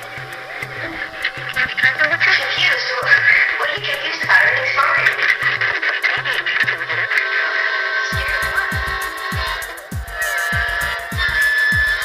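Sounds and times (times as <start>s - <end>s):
stepping bass line: 0.0s - 7.1s, 8.1s - 12.0s
hi-hat ticks: 0.0s - 7.2s, 8.1s - 12.0s
held synth notes: 0.0s - 12.0s
electronic kick drum: 8.1s - 12.0s.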